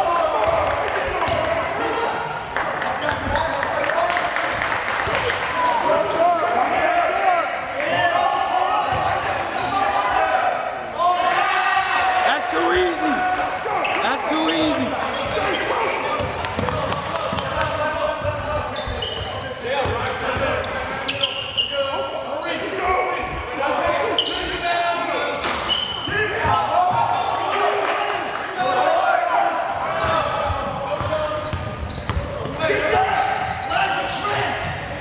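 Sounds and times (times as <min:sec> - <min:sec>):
voices calling out echoing: 0:00.0 - 0:35.0.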